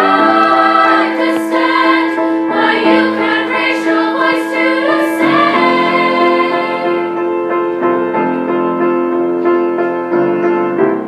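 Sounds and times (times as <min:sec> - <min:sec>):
girls' choir singing in harmony: 0:00.0 - 0:07.6
piano accompaniment: 0:00.0 - 0:11.0.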